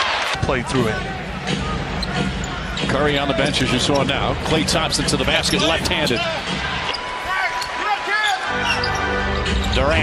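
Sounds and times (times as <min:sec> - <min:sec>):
arena crowd: 0:00.0 - 0:10.0
sneakers squeaking on floor: 0:01.9 - 0:04.2, 0:08.5 - 0:09.8.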